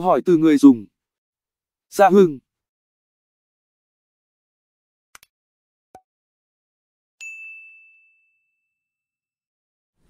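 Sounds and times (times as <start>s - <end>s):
high bell-like ding: 7.2s - 9.1s.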